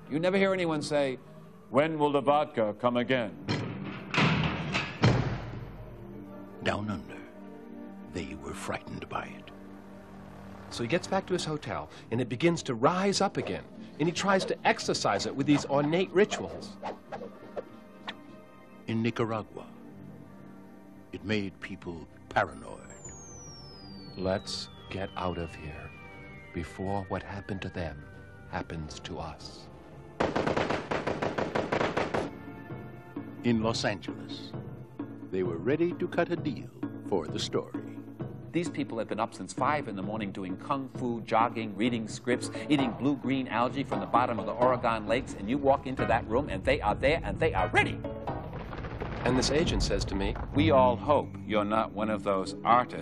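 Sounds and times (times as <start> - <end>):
metal door slamming: 3.5 - 5.8
machine-gun fire: 30.2 - 32.3, 48.6 - 49.5.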